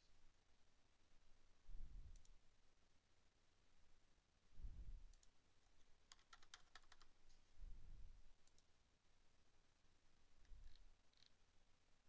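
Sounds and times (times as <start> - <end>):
faint keyboard typing: 5.1 - 7.4, 8.4 - 8.7, 10.4 - 11.4.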